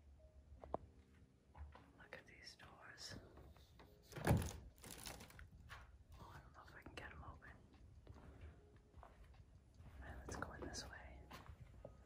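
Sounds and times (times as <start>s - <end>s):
faint whispering: 2.0s - 3.5s, 6.1s - 7.7s, 9.9s - 11.4s.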